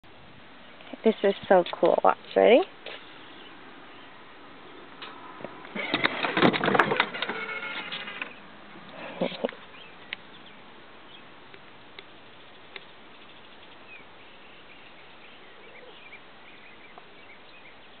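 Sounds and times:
faint birdsong chirping: 0.0s - 6.0s, 7.0s - 18.0s
low background noise: 0.0s - 18.0s.

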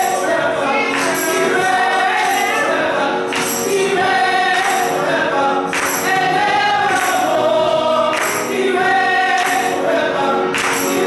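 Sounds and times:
group singing long notes: 0.0s - 11.0s.

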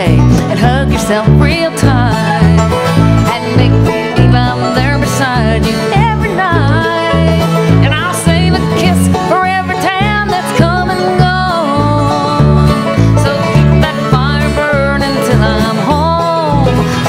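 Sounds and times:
bluegrass band playing: 0.0s - 17.0s
sliding melody: 0.0s - 17.0s.

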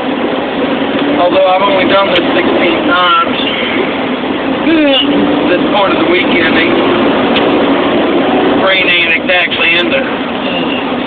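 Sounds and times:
road noise: 0.0s - 11.0s
truck diesel engine: 0.0s - 11.0s.

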